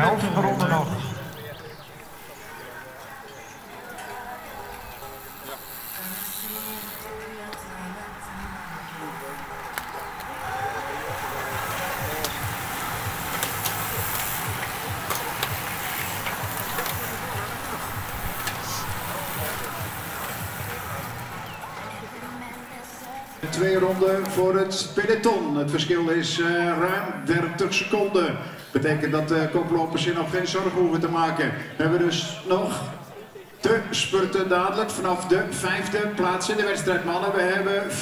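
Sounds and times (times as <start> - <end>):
bicycles passing with tyre whir: 0.0 - 24.9
background music: 6.0 - 27.3.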